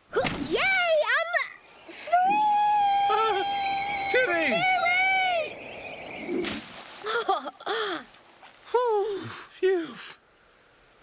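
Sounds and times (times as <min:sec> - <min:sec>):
cartoon character high cry: 0:02.2 - 0:04.9.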